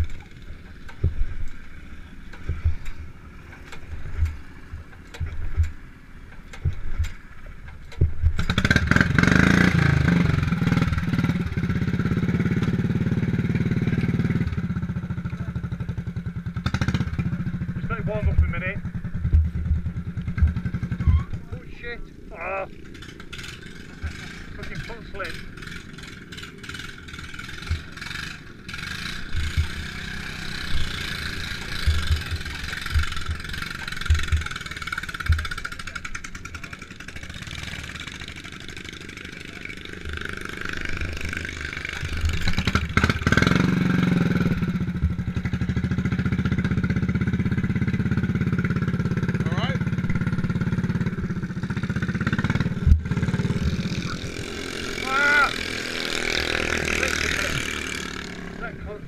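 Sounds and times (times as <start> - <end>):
small engine starting and running: 6.5 - 59.0.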